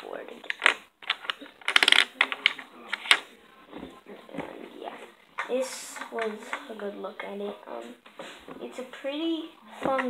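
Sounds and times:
plastic game pieces clicking on table: 0:00.5 - 0:03.2.

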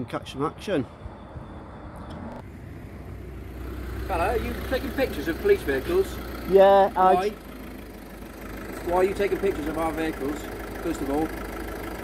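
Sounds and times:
car engine rumbling: 0:00.3 - 0:12.0.

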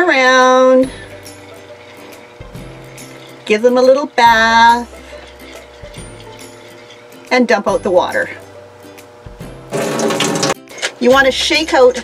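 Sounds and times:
steady buzz: 0:00.5 - 0:10.5
water running into a sink: 0:09.7 - 0:10.6.

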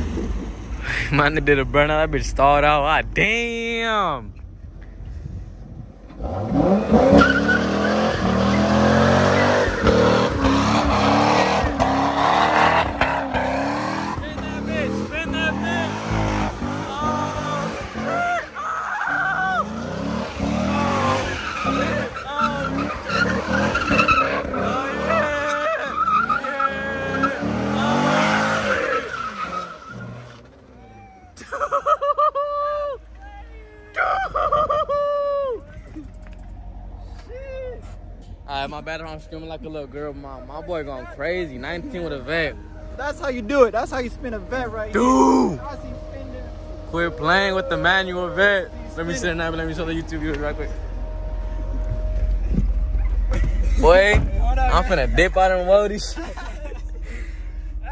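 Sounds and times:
car engine revving: 0:05.9 - 0:30.8, 0:37.8 - 0:57.9
tyres squealing: 0:06.6 - 0:31.2.

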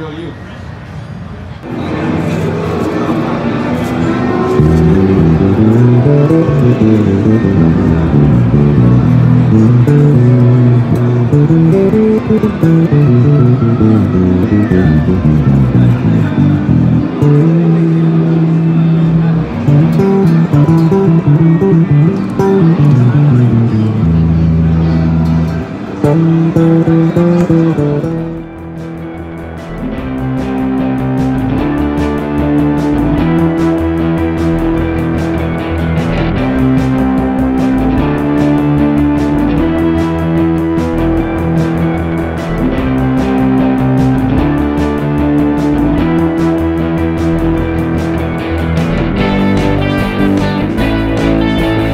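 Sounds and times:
electric bass guitar playing: 0:01.6 - 0:51.9.

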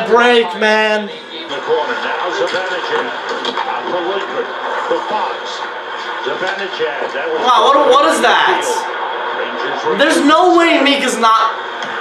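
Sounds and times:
arena crowd voices on television: 0:00.0 - 0:12.0
broadcast commentary talk: 0:00.0 - 0:12.0.

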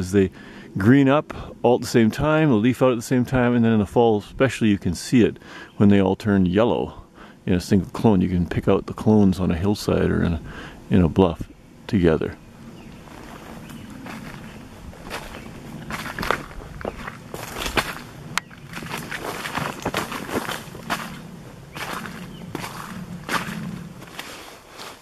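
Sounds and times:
footsteps on dry leaves: 0:12.6 - 0:25.0.

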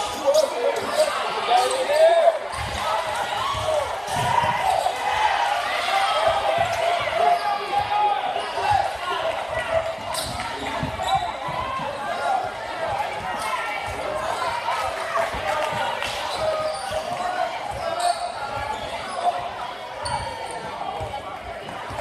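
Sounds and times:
voices and shouts: 0:00.0 - 0:22.0.

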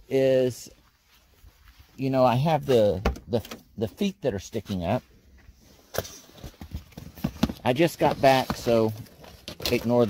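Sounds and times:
gear handling sounds: 0:05.9 - 0:10.0.

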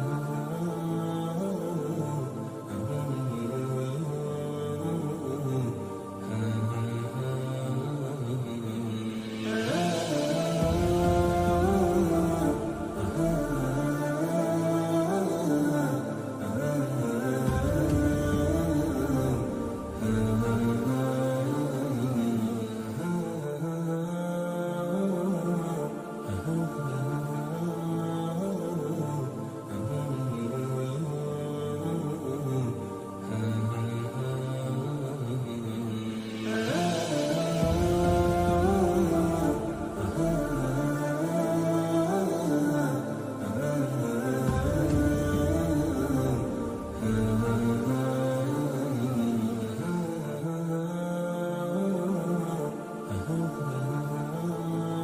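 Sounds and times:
wordless vocal melody: 0:00.0 - 0:55.0.

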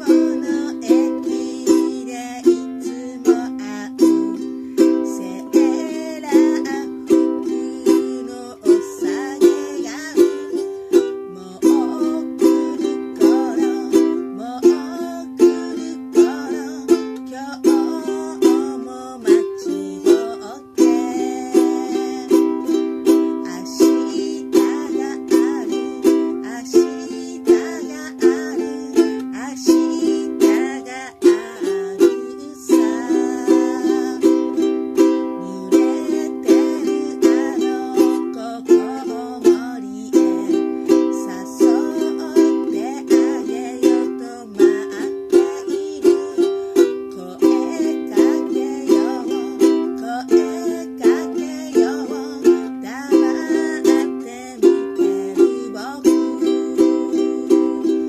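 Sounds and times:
ukulele strumming: 0:00.0 - 0:58.0
woman singing: 0:00.0 - 0:58.0.

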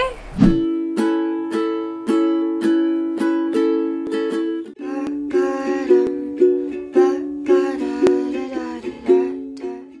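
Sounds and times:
plucked-string chords: 0:00.6 - 0:10.0.

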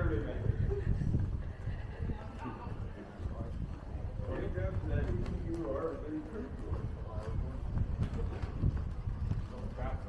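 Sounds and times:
footsteps on paving stones: 0:01.1 - 0:10.0.

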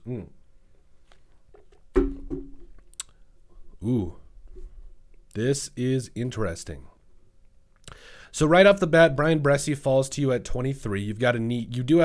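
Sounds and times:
water bottle knocking on desk: 0:01.9 - 0:02.7.

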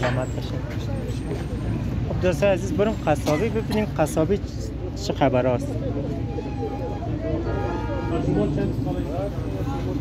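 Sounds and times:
low rumble of traffic: 0:00.0 - 0:10.0
people talking: 0:00.0 - 0:10.0.

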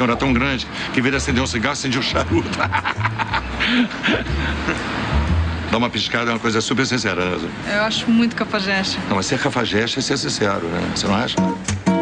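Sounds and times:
person chuckling: 0:02.1 - 0:04.9.

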